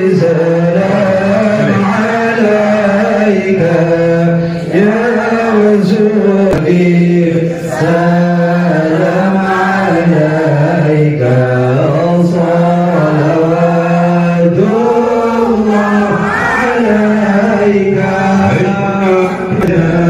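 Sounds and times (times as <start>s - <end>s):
group chanting in unison: 0.0s - 20.0s.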